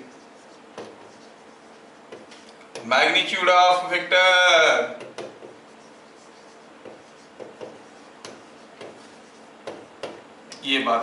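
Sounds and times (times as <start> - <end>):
chalk scratching on blackboard: 0.0 - 2.3, 5.2 - 10.2.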